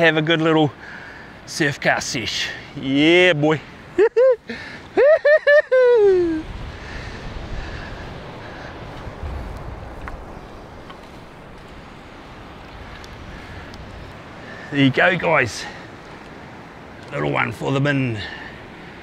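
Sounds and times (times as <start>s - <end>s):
wind rumble on microphone: 5.9s - 14.4s.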